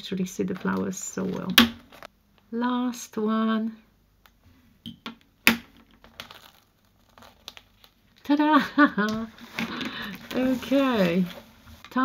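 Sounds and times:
masking film crackling: 6.0s - 8.4s, 9.2s - 12.0s.

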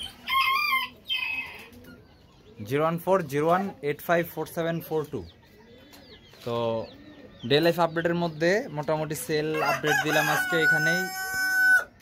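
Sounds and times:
rooster crowing: 9.5s - 12.0s.

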